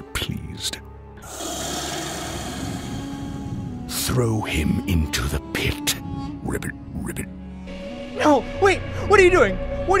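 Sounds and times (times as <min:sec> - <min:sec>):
magic hissing rasp effect: 0:01.2 - 0:03.6.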